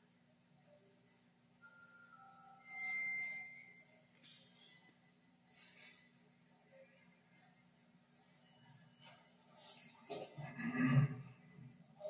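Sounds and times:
high whistle-like tone: 1.6s - 4.0s
faint lower tone: 1.6s - 5.7s.

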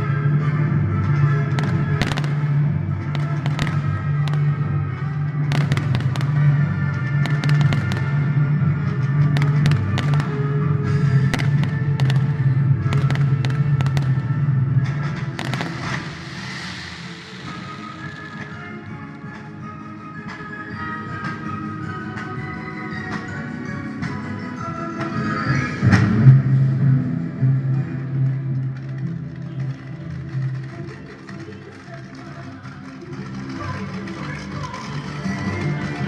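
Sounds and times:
music playing: 0.0s - 36.0s
fireworks bangs and crackles: 1.1s - 19.4s.

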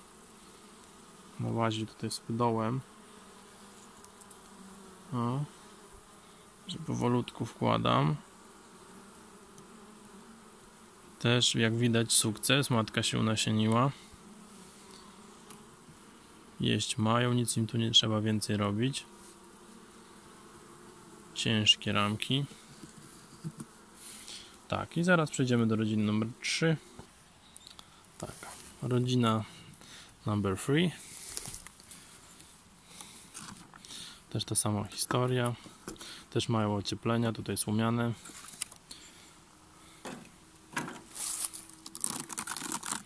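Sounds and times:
honeybees humming: 0.0s - 43.0s
plastic foil crinkling: 41.1s - 43.0s.

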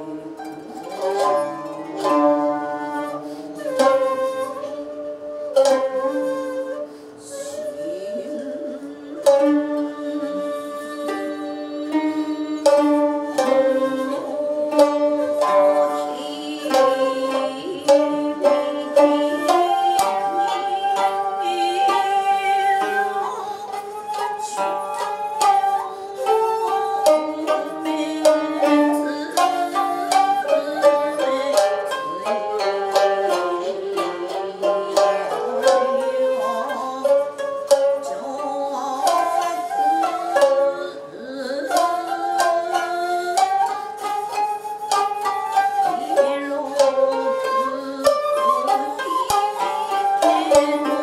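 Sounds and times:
bamboo flute long notes: 0.0s - 51.0s
plucked zither and lute notes: 0.0s - 51.0s.

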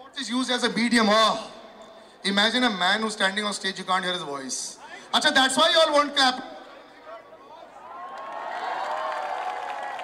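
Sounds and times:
crowd cheering and clapping: 7.8s - 10.0s.

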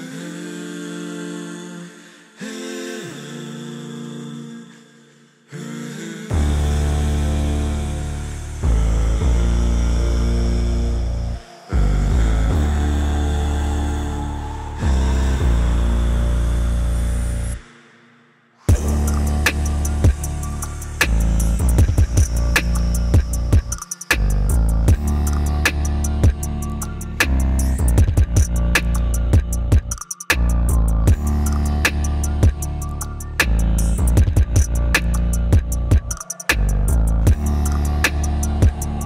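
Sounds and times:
hummed vocal chords: 0.0s - 39.0s
deep vocal bass chords: 5.6s - 17.7s, 18.6s - 39.0s.

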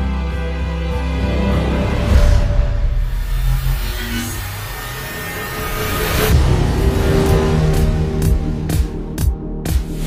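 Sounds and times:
film trailer score: 0.0s - 10.0s.

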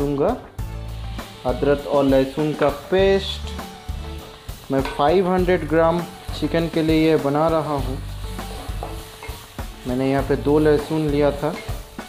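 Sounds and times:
onions sizzling in hot oil: 0.6s - 12.0s
spatula scraping a pan: 5.9s - 12.0s.

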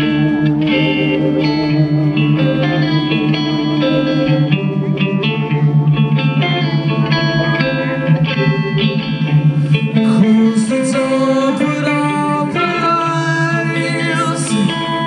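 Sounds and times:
electric guitar with effects: 0.0s - 15.0s
rock band playing: 0.0s - 15.0s.

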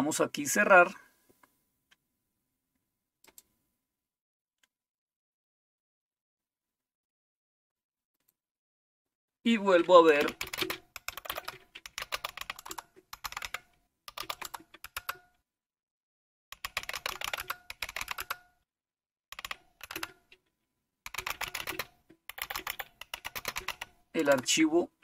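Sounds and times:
typing on a computer keyboard: 9.8s - 15.3s, 16.5s - 18.5s, 19.3s - 20.4s, 21.1s - 24.6s.

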